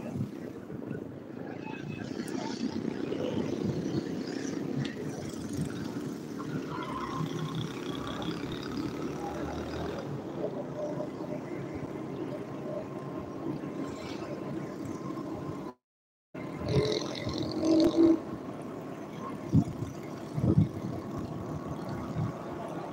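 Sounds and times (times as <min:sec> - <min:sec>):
road and engine rumble: 0:00.0 - 0:22.9.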